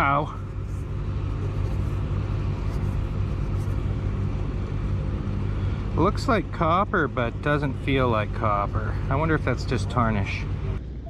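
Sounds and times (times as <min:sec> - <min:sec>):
motor running with low rumble: 0:00.0 - 0:11.0.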